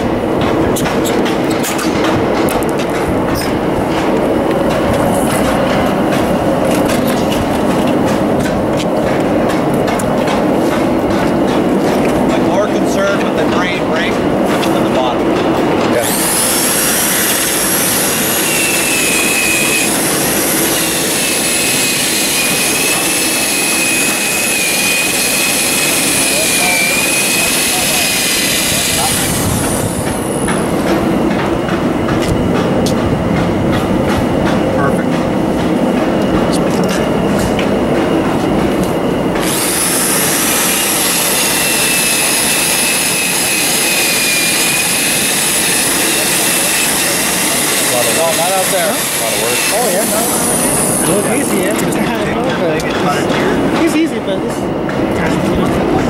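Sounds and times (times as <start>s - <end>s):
drill motor whine: 16.0s - 30.4s, 39.4s - 51.7s.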